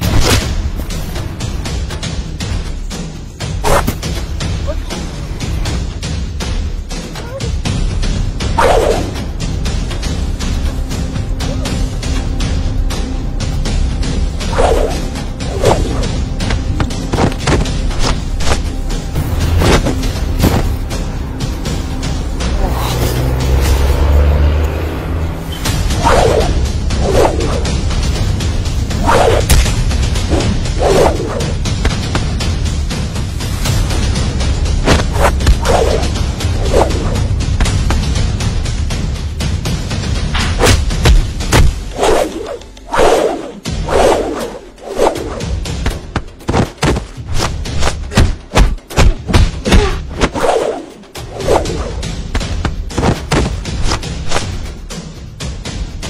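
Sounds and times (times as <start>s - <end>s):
background music: 0.0s - 56.0s
swishing whooshes: 14.5s - 16.2s, 25.4s - 27.8s, 28.9s - 29.6s, 30.2s - 31.6s, 34.8s - 37.3s, 41.6s - 45.6s, 49.7s - 54.6s.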